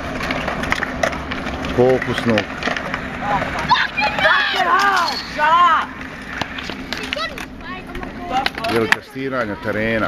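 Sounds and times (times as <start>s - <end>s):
skateboards clacking on concrete: 0.0s - 10.0s
young voices shouting: 3.1s - 6.1s
people talking: 3.2s - 5.9s, 6.9s - 10.0s.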